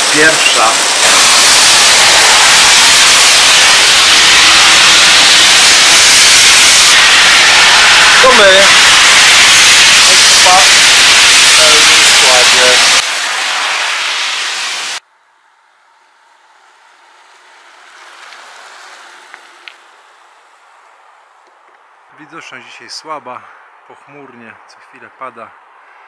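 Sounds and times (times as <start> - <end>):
heavy rain pouring: 0.0 - 15.0.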